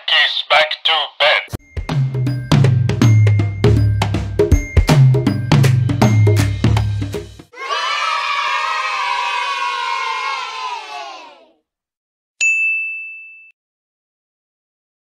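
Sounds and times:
children's music with drums: 1.7 - 7.8
children cheering: 7.6 - 11.5
bright bell ding: 12.4 - 13.6.

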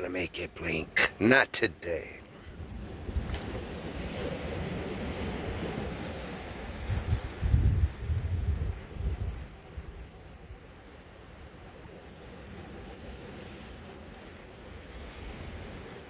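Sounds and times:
surf on rocky shore: 0.0 - 16.0
wind buffeting microphone: 2.5 - 16.0.

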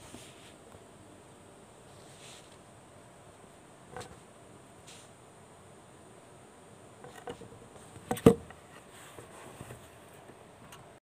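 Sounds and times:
soft rustles: 0.0 - 0.8, 1.9 - 2.7, 8.6 - 10.4
faint steady high hiss: 0.0 - 11.0.

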